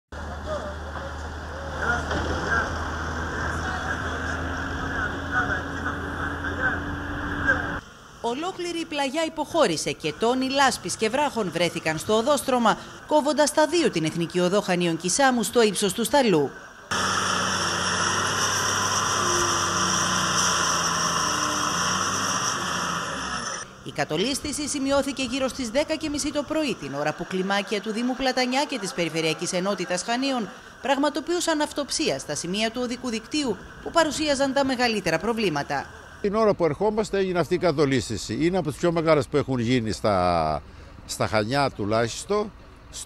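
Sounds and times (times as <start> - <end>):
engine hum: 0.1 - 8.2, 9.6 - 15.1, 16.8 - 36.3, 37.1 - 43.0.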